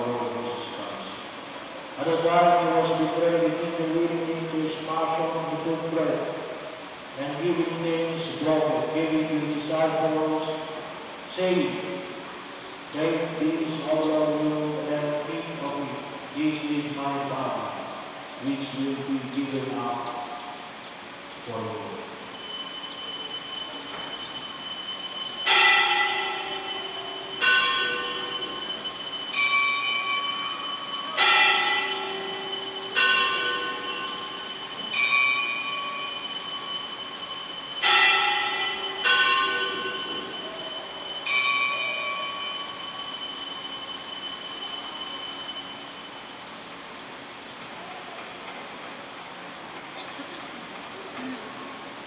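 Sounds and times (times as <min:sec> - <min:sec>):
continuous high bell ringing: 0:22.1 - 0:47.0
bell strikes: 0:22.2 - 0:46.5.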